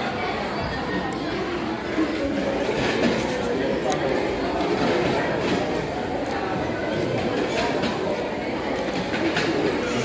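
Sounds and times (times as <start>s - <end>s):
dining clatter: 7.0s - 10.0s.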